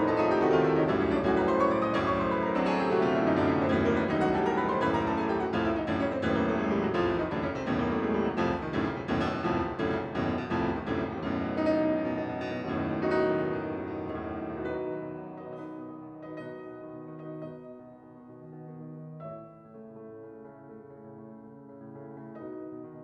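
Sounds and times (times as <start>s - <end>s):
fast classical piano piece: 0.0s - 23.0s.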